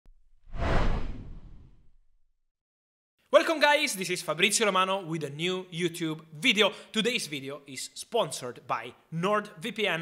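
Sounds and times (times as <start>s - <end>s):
whoosh with deep rumble: 0.4s - 2.1s.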